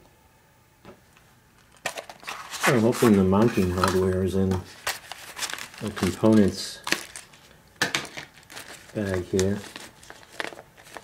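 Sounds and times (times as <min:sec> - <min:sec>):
plastic bag crinkling: 0:01.8 - 0:11.0.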